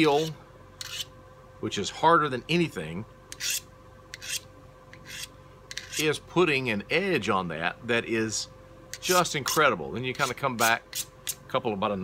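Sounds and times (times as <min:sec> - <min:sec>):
knife sharpener scraping blade: 0:00.0 - 0:01.1, 0:03.3 - 0:06.2, 0:09.0 - 0:09.6, 0:10.2 - 0:11.4.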